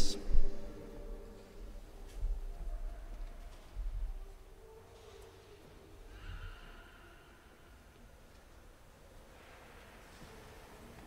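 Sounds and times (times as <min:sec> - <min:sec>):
low rumble: 0:00.0 - 0:01.9.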